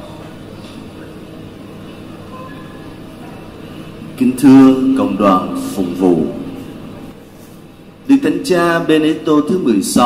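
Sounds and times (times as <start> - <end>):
fans running: 0.0 - 10.0.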